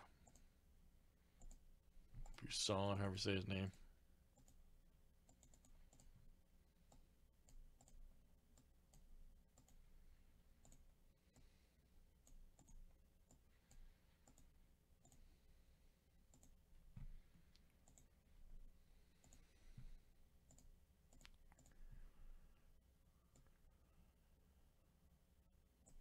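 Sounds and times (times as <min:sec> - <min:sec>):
computer mouse clicks: 0:00.1 - 0:00.5, 0:01.4 - 0:02.5, 0:04.4 - 0:04.6, 0:05.2 - 0:06.2, 0:06.8 - 0:09.8, 0:10.6 - 0:11.5, 0:12.2 - 0:15.3, 0:16.3 - 0:18.1, 0:19.1 - 0:19.6, 0:20.4 - 0:21.8, 0:23.3 - 0:23.6.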